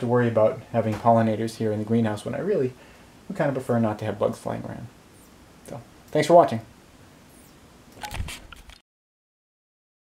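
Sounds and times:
camera handling rustles and clicks: 8.0 - 8.8.

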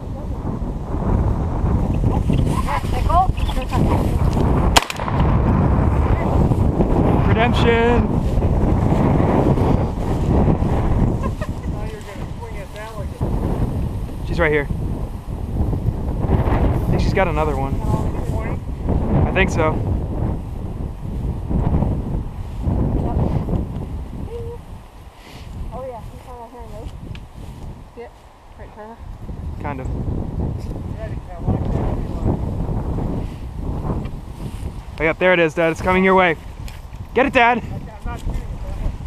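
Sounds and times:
wind buffeting microphone: 0.0 - 39.0
shotgun shot: 4.7 - 5.4.

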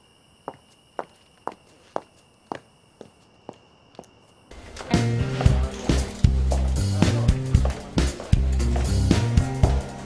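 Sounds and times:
brisk footsteps: 0.5 - 10.0.

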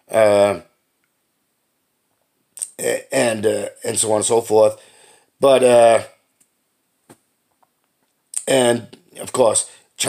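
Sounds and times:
man speaking: 0.0 - 0.7, 2.6 - 4.8, 5.4 - 6.2, 8.4 - 10.0.

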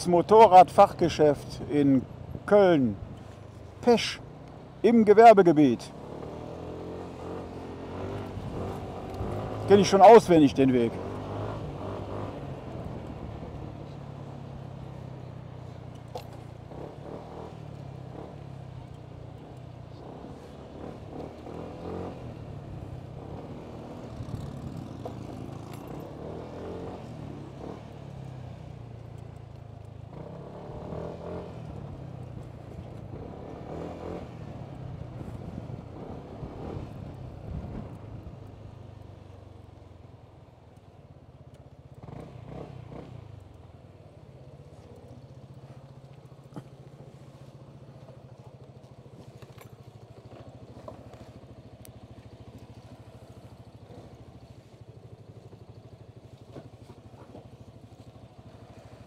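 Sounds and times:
scooter engine running: 6.0 - 59.0.

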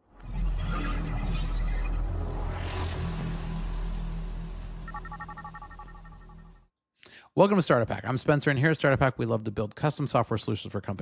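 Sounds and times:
rising whoosh: 2.0 - 6.4
pulsing high tones: 3.0 - 6.7.

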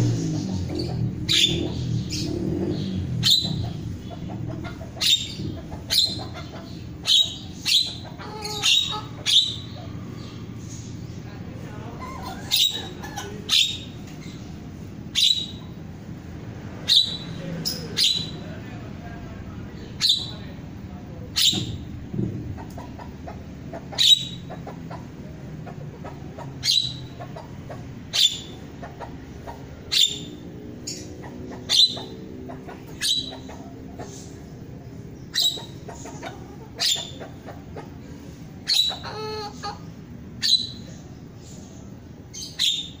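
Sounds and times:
starling calling: 0.0 - 18.9, 19.7 - 43.0.

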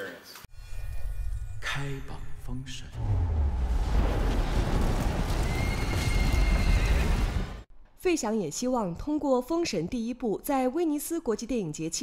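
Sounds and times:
deep rumble: 1.2 - 7.6
horse hooves clattering: 4.5 - 7.6.

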